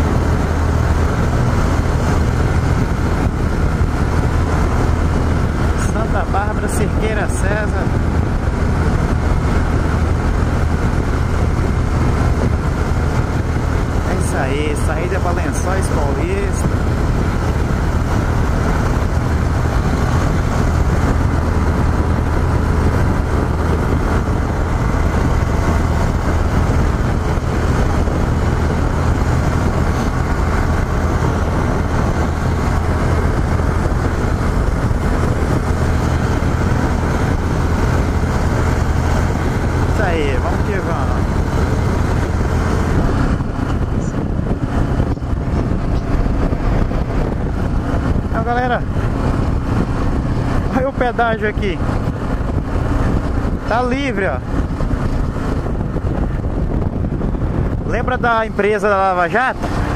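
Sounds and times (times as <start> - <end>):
motorcycle engine cruising: 0.0 - 59.9
road noise: 0.0 - 59.9
wind noise: 0.0 - 59.9.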